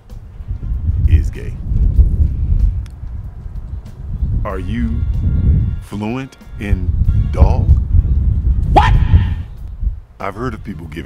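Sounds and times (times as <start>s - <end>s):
wind buffeting microphone: 0.0s - 11.0s
sharp rising yelp: 8.7s - 9.5s.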